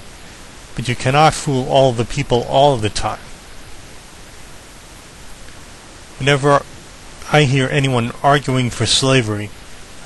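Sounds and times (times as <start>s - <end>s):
steady background hiss: 0.0s - 10.0s
man's voice: 0.8s - 3.2s, 6.2s - 6.6s, 7.2s - 9.5s.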